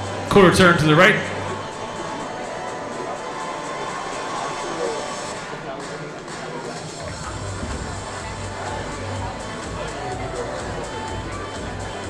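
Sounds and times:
audience chatter: 0.0s - 12.0s
music over speakers: 0.0s - 12.0s.

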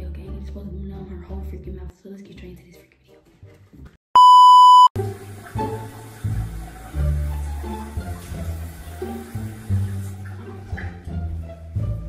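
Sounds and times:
background music: 0.0s - 3.9s, 5.0s - 12.0s
high test-tone beep: 4.2s - 5.0s.

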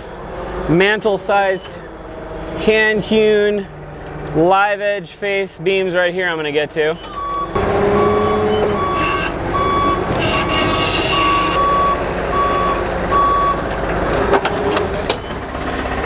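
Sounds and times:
forklift engine running: 0.0s - 4.5s, 7.0s - 16.0s
backup alarm beeping: 7.0s - 13.6s.

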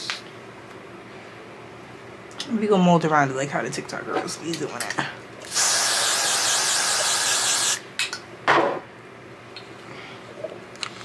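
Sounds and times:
aerosol hairspray hissing: 5.5s - 7.8s.

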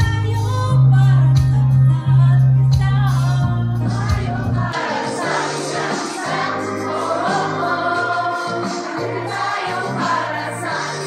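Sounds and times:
group singing a carol: 3.9s - 11.0s.

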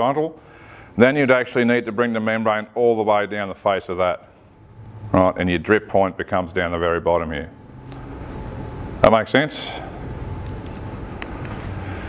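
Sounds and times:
low hum: 1.8s - 12.0s.

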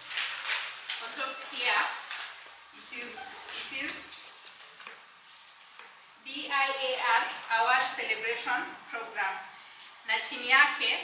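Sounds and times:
faint room noise hiss: 0.0s - 11.0s.

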